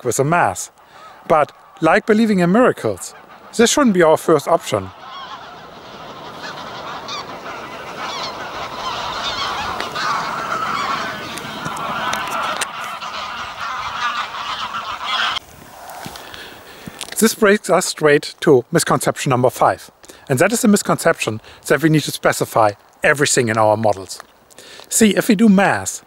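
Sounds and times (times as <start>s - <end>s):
geese honking: 0.0s - 16.6s.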